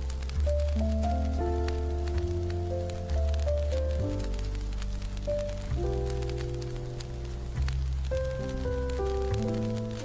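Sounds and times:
rain pattering: 0.0 - 10.0
smooth jazz piano and bass: 0.0 - 10.0.

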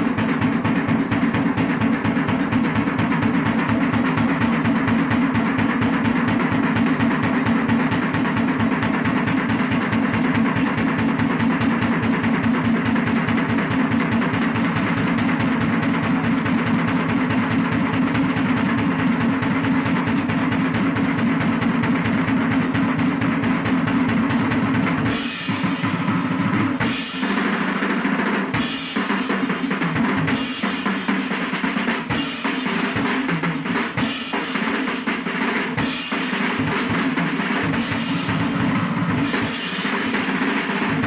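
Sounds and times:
drum kit playing fast rolls: 0.0 - 41.0.

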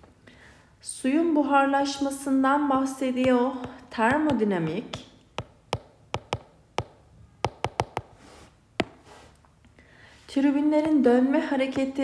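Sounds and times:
stylus tapping on glass screen: 3.2 - 8.2.

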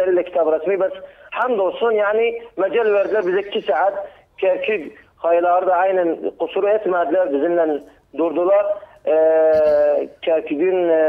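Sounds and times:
man talking: 1.5 - 11.0
man's long hesitation sound: 8.8 - 10.2.

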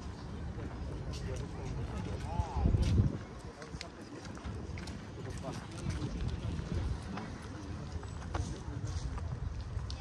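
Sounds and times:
faint voices of passers-by: 0.0 - 10.0
footsteps on stone walkway: 0.0 - 10.0.

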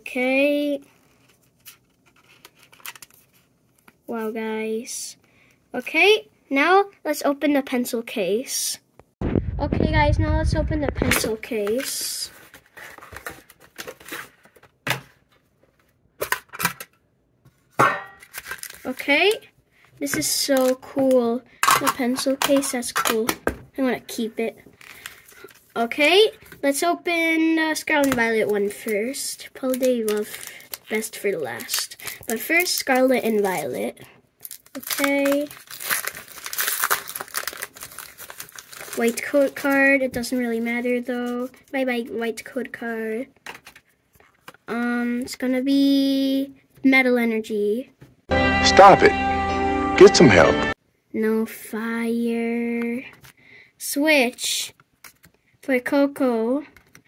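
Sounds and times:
cardboard packaging rustling: 0.8 - 3.9, 11.0 - 16.9, 17.6 - 19.2, 29.6 - 33.6, 34.4 - 41.6
foil wrapper crinkling: 18.2 - 19.3, 29.6 - 33.6, 34.4 - 39.9.

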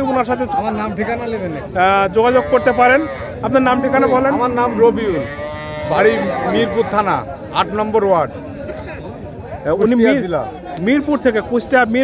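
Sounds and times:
cow mooing: 2.1 - 7.3.

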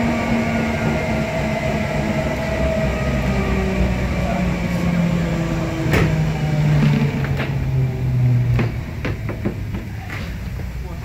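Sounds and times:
electric train motor humming: 0.0 - 11.0.

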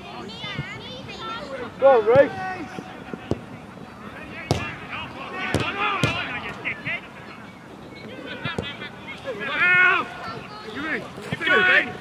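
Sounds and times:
players shouting: 0.6 - 7.4, 8.0 - 12.0.

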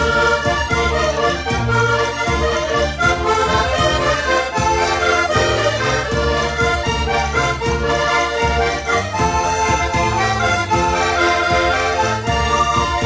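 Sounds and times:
accordions playing dance tune: 0.0 - 13.0.

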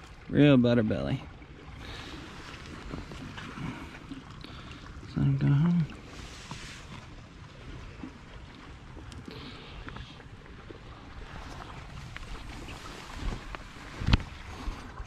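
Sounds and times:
creek water running over gravel: 0.0 - 15.0
wind rumble on microphone: 6.1 - 15.0.

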